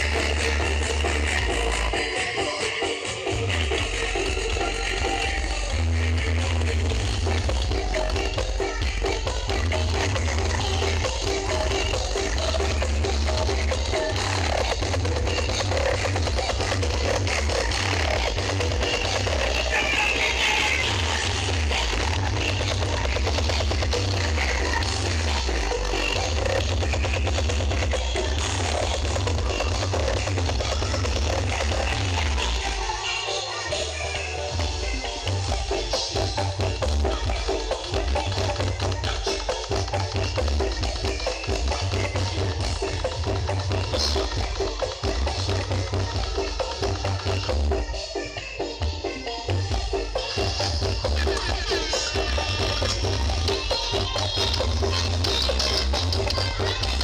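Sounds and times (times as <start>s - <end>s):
loud music with heavy bass: 0.0s - 57.0s.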